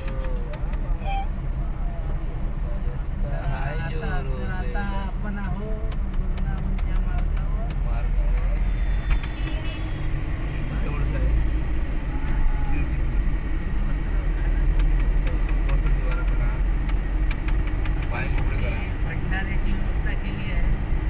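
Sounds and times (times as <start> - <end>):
car engine and tyres rumbling: 0.0 - 21.0.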